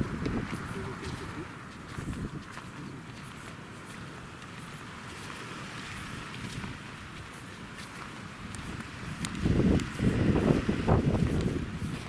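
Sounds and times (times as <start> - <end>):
wind buffeting microphone: 0.0 - 12.0
wind rushing through palm fronds: 0.0 - 12.0.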